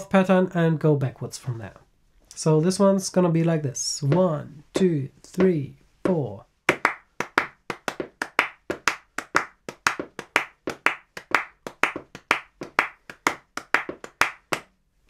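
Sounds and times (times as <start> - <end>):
hand claps: 6.7 - 14.7.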